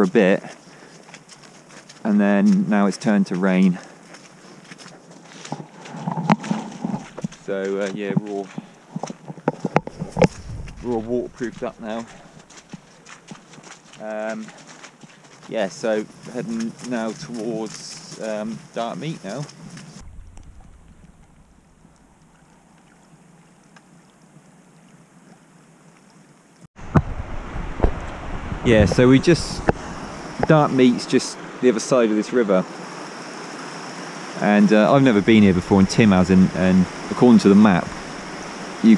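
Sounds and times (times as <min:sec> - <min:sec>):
footsteps on wet ground: 0:00.0 - 0:24.1
small stream trickling: 0:00.2 - 0:28.8, 0:29.6 - 0:38.9
low rumble: 0:10.0 - 0:12.3, 0:19.9 - 0:22.6.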